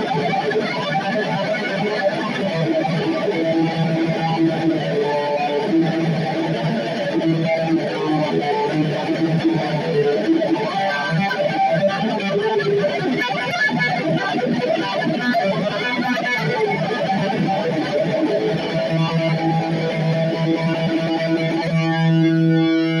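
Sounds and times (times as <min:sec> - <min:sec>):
heavy metal electric guitar: 0:00.0 - 0:23.0.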